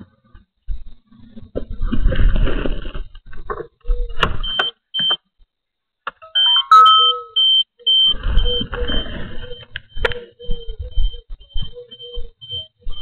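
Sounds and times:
high electronic beeps: 6.2 - 13.0
stepped electronic tones: 6.2 - 13.0.

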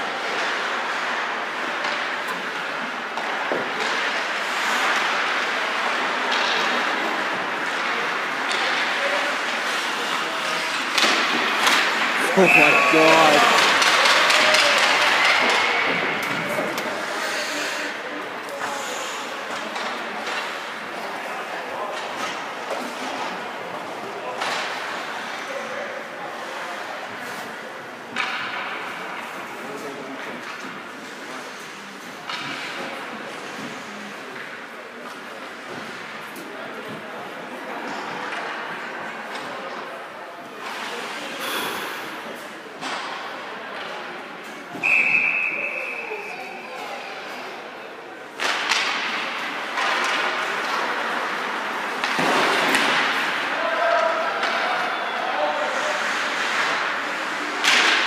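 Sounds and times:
indistinct voices in arena: 0.0 - 58.0.

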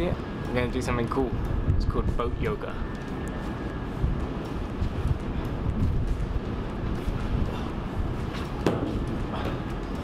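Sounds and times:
low steady ferry rumble: 0.0 - 10.0
wind gusting against microphone: 0.0 - 10.0.

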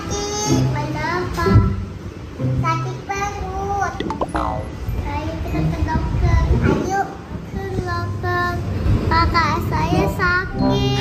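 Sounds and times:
child singing: 0.0 - 2.0, 2.6 - 4.1, 5.0 - 11.0.

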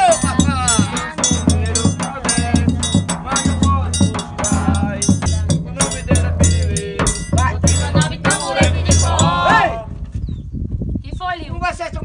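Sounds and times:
triangle ringing: 0.0 - 9.4
bass drum beating: 0.0 - 9.8.

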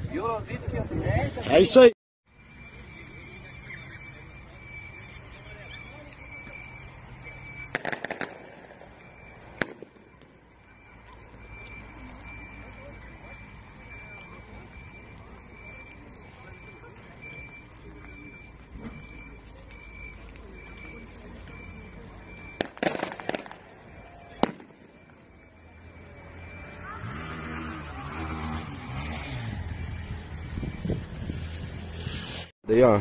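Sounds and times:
faint high beep: 1.1 - 32.4
sharp cracks: 7.6 - 10.3, 22.6 - 23.7.

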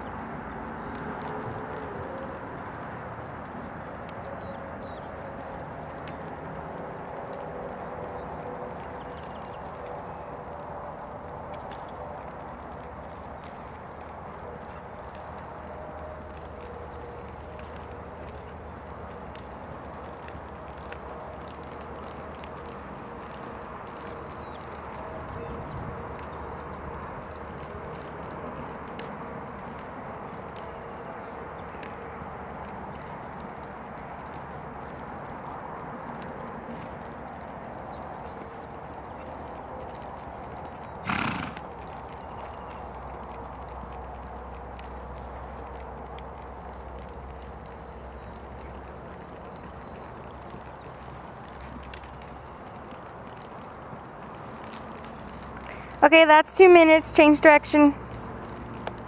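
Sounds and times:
horse hoofbeats on dirt: 0.0 - 59.0.

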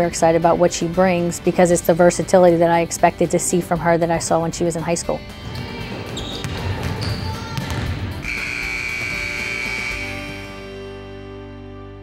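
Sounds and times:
background music: 0.0 - 12.0
basketballs bouncing on hardwood: 5.4 - 10.2
steady high tone: 8.2 - 10.8.

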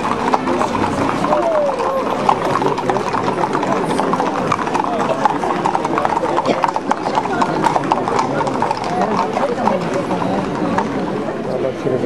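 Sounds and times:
horse hooves on pavement: 0.0 - 11.6.

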